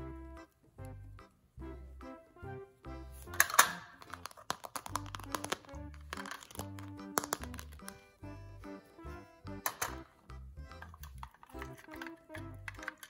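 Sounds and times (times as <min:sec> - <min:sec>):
background music with bass: 0:00.0 - 0:03.6, 0:05.0 - 0:12.8
plastic toy pieces clicking: 0:03.2 - 0:08.0, 0:09.6 - 0:13.0.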